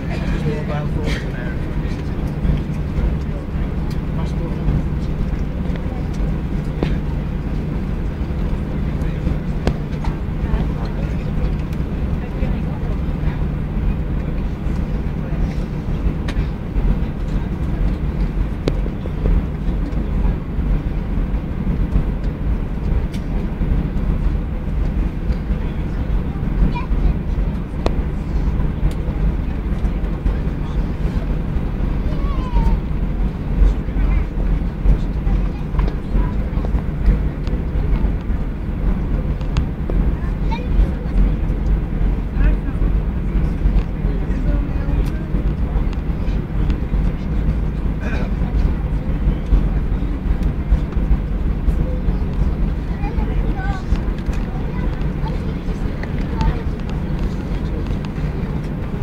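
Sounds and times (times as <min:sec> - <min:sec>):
airplane cabin rumble while taxiing: 0:00.0 - 0:59.0.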